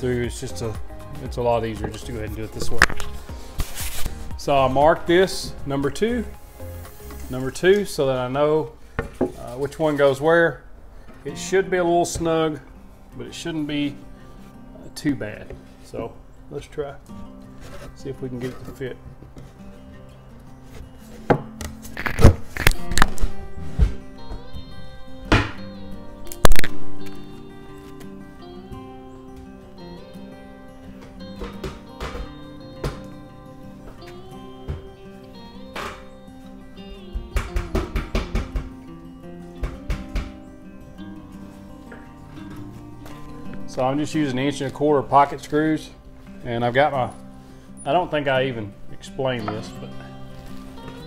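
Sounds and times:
background music: 0:00.0 - 0:51.0
wooden thunks: 0:39.6 - 0:40.4.

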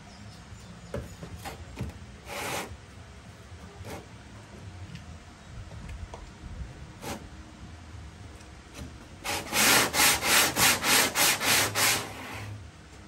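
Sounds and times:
sanding block rubbing stroke: 0:02.3 - 0:02.7, 0:09.2 - 0:12.6
sanding block knocking: 0:09.2 - 0:12.4.

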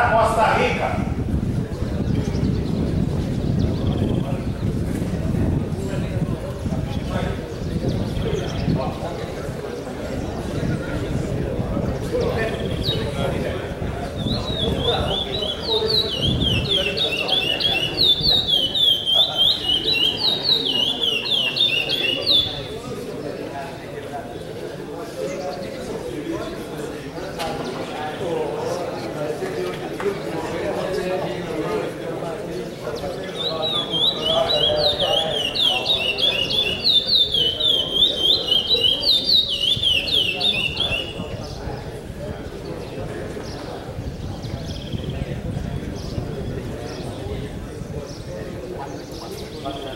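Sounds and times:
songbird whistling song: 0:03.6 - 0:04.2, 0:12.2 - 0:13.2, 0:14.0 - 0:22.7, 0:33.2 - 0:41.6.

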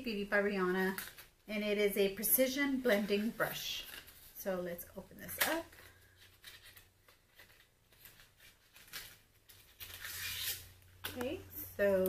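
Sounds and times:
packaging rustling and clicking: 0:05.3 - 0:11.4.

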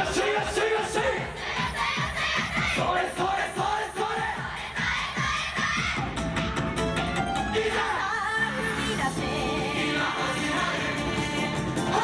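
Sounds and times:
amplified dance music: 0:00.0 - 0:12.0.

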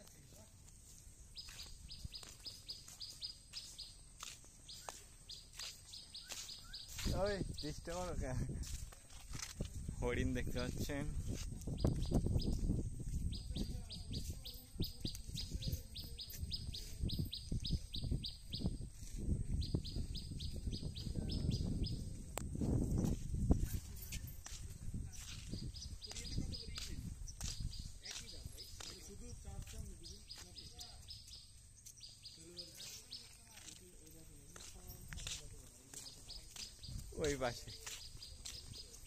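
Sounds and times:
bird chirping rapidly: 0:04.6 - 0:08.1.

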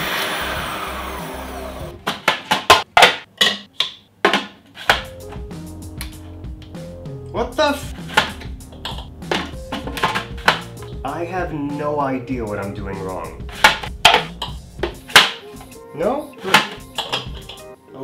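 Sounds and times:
food processor motor running: 0:00.0 - 0:01.9
background music with a beat: 0:04.9 - 0:17.9.

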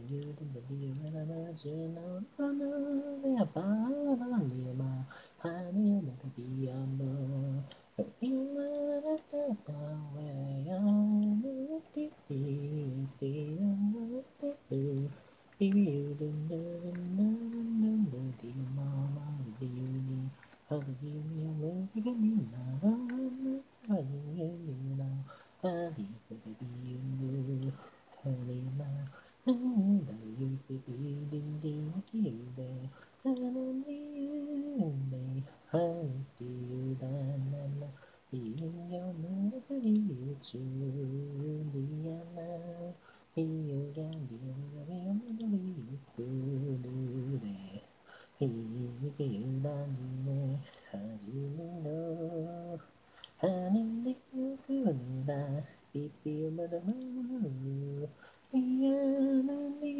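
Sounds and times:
a cappella singing voice: 0:00.0 - 0:59.9.

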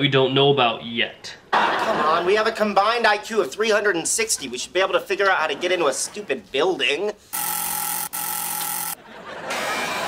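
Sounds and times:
intercom door buzzer: 0:07.3 - 0:09.0.

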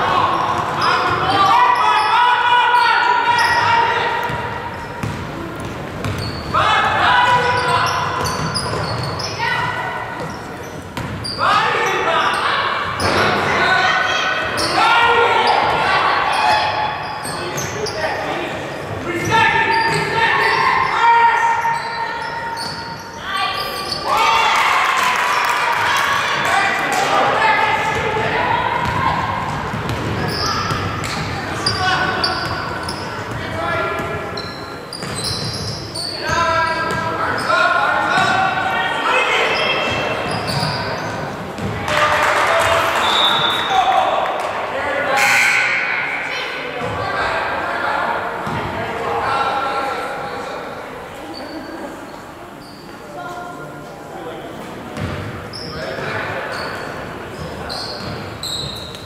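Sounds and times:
people shouting in gym: 0:00.0 - 0:04.7, 0:06.4 - 0:10.2, 0:11.4 - 0:18.4, 0:19.0 - 0:34.0.

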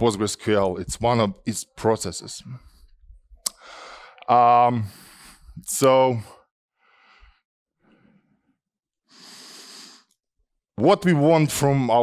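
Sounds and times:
faint breaths into microphone: 0:03.6 - 0:05.6.

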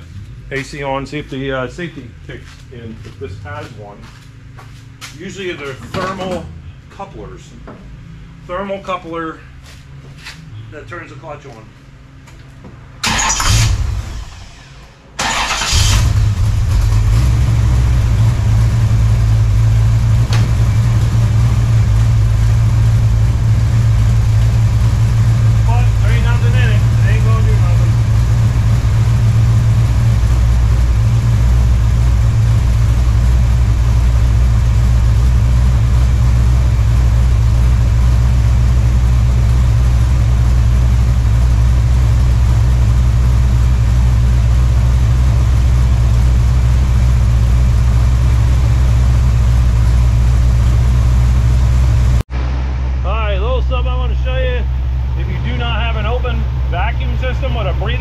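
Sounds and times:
car engine starting and idling: 0:00.0 - 0:58.0.

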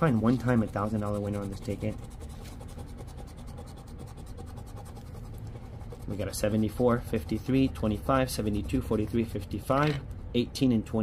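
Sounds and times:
scratcher scraping lottery ticket: 0:00.0 - 0:07.5.

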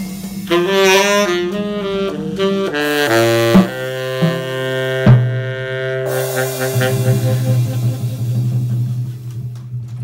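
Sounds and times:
saxophone low drone: 0:00.0 - 0:09.4.

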